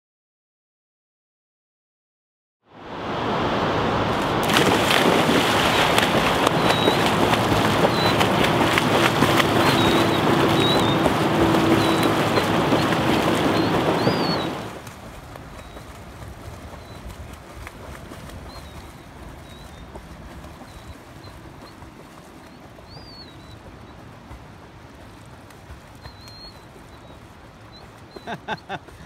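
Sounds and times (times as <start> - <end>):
river water rushing over dam: 2.8 - 29.0.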